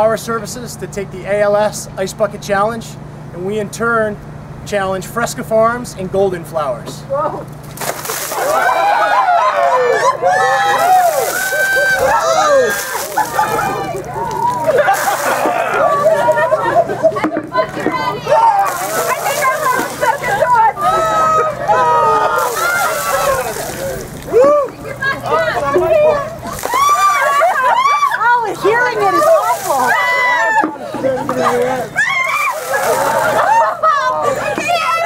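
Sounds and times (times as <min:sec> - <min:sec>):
ice water splashing: 0:07.6 - 0:09.2, 0:10.6 - 0:16.6, 0:18.3 - 0:21.2, 0:22.2 - 0:24.7, 0:26.4 - 0:34.0
people crying out: 0:08.3 - 0:35.0
people calling and babbling: 0:09.5 - 0:35.0.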